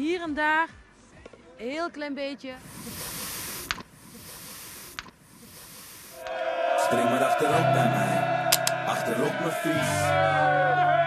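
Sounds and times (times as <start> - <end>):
air hissing from tyre valve: 2.6 - 6.2
valve clicks: 2.9 - 6.1
music: 7.4 - 11.0.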